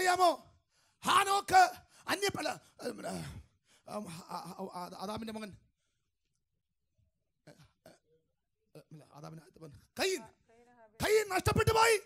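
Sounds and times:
man preaching into a microphone: 0.0s - 5.6s, 8.8s - 10.4s, 11.0s - 12.0s.

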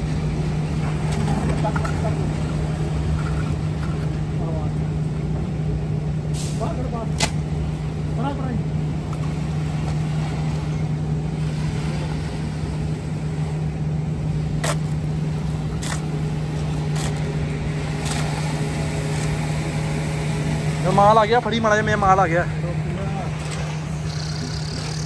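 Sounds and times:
low engine hum: 0.0s - 25.0s.

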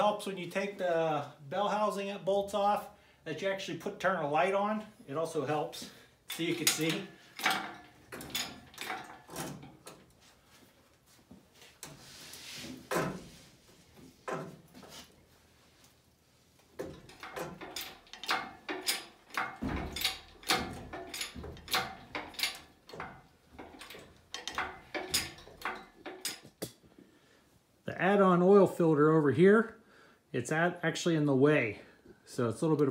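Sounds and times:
metal knocks and clunks: 6.3s - 10.1s, 12.7s - 13.4s, 14.1s - 14.9s, 16.8s - 26.7s
metal scrape: 11.8s - 13.7s.

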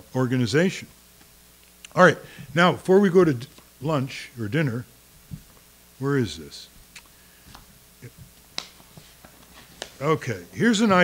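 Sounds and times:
papers clicking and tapping: 8.5s - 10.0s.

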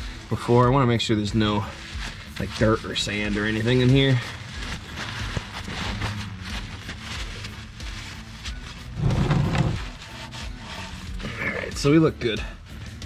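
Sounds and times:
faint background music: 0.0s - 13.0s
paper towel rubbing on metal: 0.0s - 13.0s.

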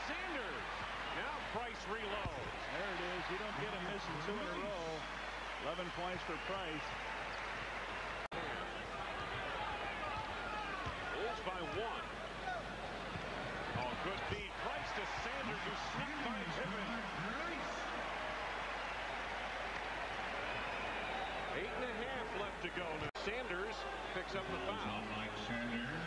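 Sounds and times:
crowd and player voices: 0.0s - 26.0s.

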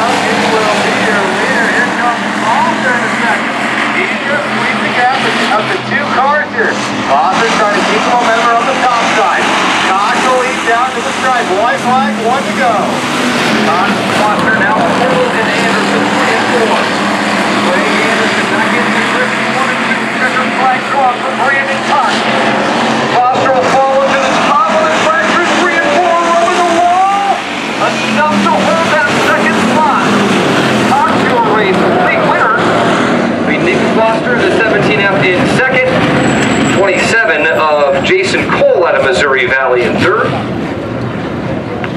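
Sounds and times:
race car engines droning: 0.0s - 41.9s
spectators talking and calling: 0.0s - 41.9s.

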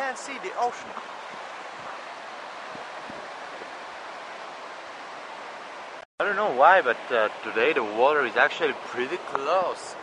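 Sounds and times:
ocean surf on sandy beach: 0.0s - 10.0s
wind on microphone: 0.5s - 3.9s.

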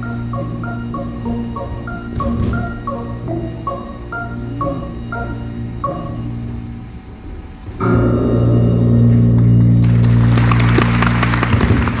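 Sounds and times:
orchestra holding low chord: 0.0s - 12.0s
audience clapping: 9.8s - 12.0s.

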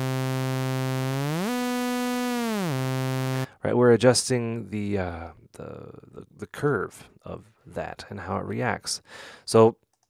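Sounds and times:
sawtooth synth gliding note: 0.0s - 3.5s.

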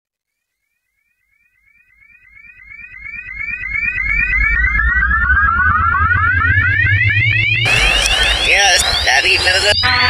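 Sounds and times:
synthesizer rising chirps: 1.0s - 10.0s
fast ticking pulse: 2.0s - 10.0s
deep bass drone: 2.1s - 10.0s.

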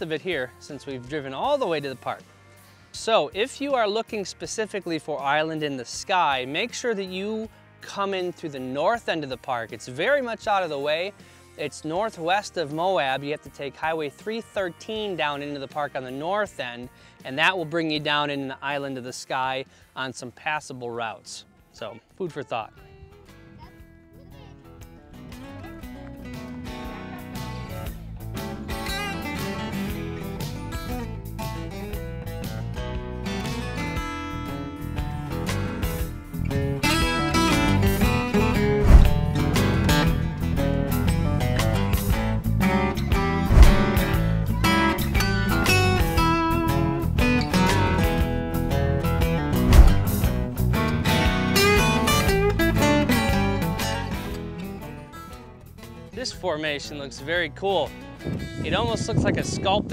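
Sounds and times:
acoustic guitar background music: 0.0s - 59.9s
deep hits: 38.7s - 39.6s, 43.3s - 44.4s, 49.6s - 50.5s.

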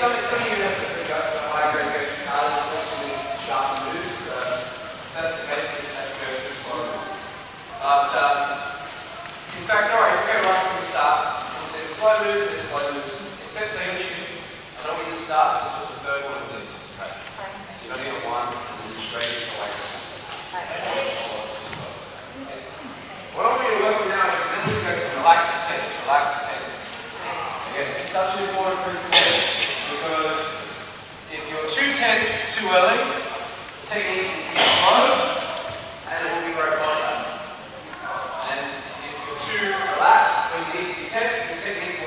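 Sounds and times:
instructor talking: 0.0s - 37.6s, 38.4s - 42.0s
indistinct speech echoing: 0.0s - 42.0s.

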